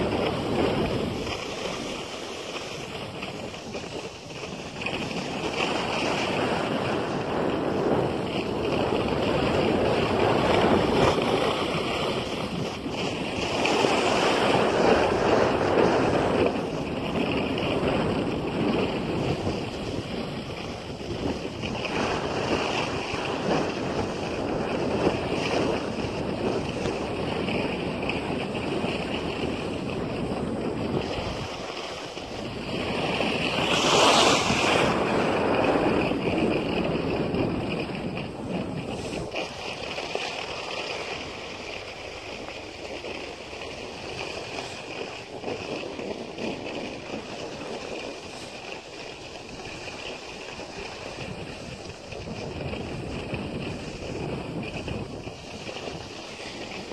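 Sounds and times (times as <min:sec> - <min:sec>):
skis scraping over snow: 0:00.0 - 0:56.9
wind on microphone: 0:00.0 - 0:56.9.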